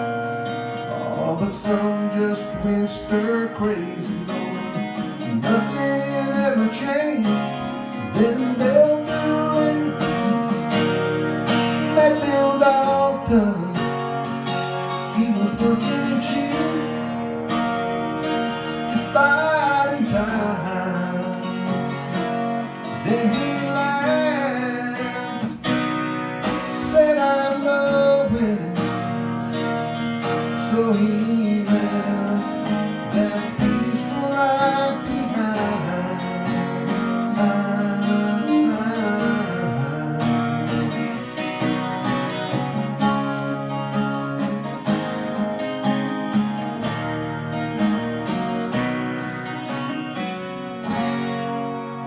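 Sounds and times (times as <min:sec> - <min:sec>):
man singing: 0:00.0 - 0:25.8, 0:26.4 - 0:41.3
twelve-string acoustic guitar strummed: 0:00.0 - 0:52.0.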